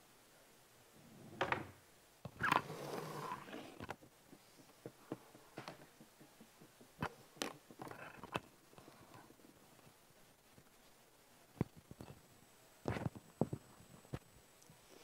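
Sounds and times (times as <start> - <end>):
sharp clicks and knocks: 3.8 - 8.5.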